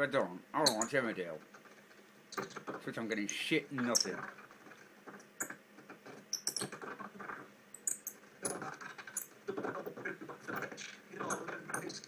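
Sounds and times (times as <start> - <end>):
television sound breaking up: 0.0 - 12.0
high chirps and clicks: 6.3 - 6.9, 7.7 - 8.2.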